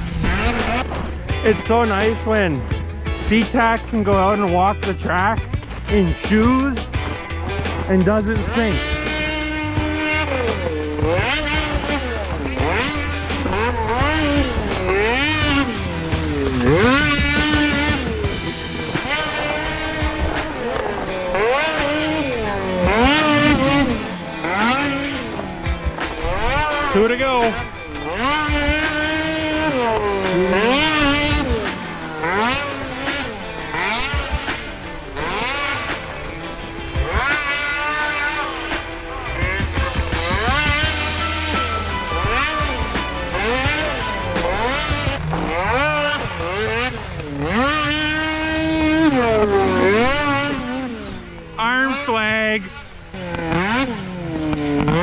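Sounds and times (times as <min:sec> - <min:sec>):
snowmobile engine revving: 0:00.0 - 0:55.0.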